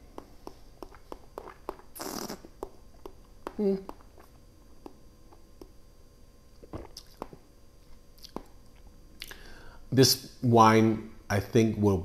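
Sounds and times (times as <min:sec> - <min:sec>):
wet mouth clicks and smacks: 0:00.1 - 0:05.8, 0:06.5 - 0:07.5, 0:08.2 - 0:09.4
breath of air: 0:09.2 - 0:09.9.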